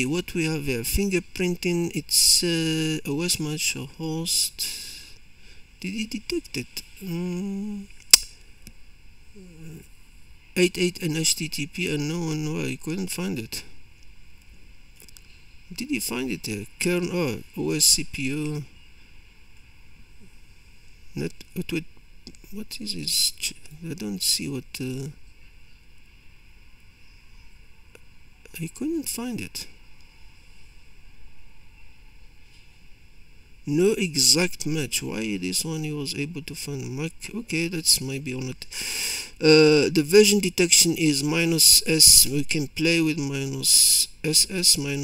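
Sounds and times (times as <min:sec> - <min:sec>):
faint room tone hiss: 0:00.0 - 0:45.0
sharp clicks: 0:08.0 - 0:08.8
man humming um: 0:09.3 - 0:09.9.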